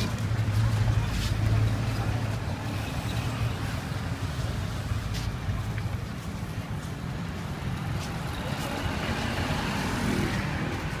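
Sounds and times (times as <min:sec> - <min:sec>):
passing vehicles engine rumble: 0:00.0 - 0:11.0.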